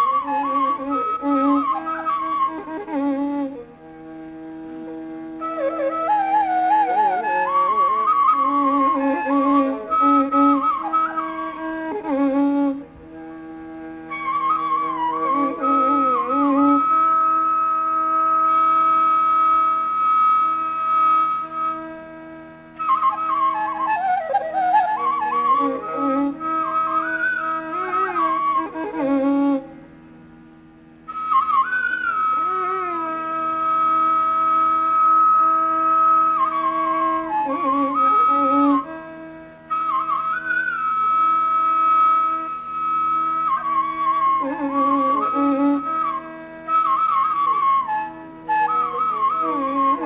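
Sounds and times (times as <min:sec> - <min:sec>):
bamboo flute long high note: 0:00.0 - 0:30.1, 0:31.1 - 0:50.0
faint sustained accompaniment: 0:00.0 - 0:50.0.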